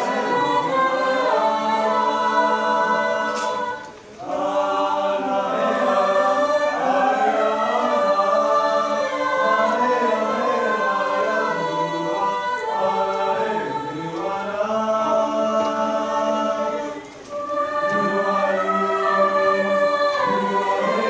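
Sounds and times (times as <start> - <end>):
mixed choir singing a cappella: 0.0 - 21.0.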